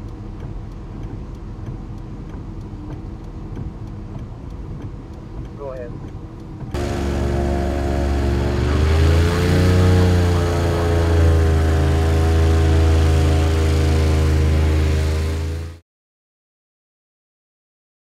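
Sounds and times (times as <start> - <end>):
airboat engine and propeller drone: 3.6 - 15.8.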